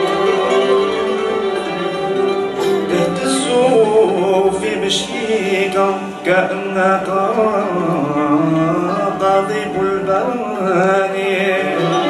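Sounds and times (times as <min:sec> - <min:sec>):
string ensemble playing: 0:00.0 - 0:12.0
voices singing along: 0:00.0 - 0:12.0.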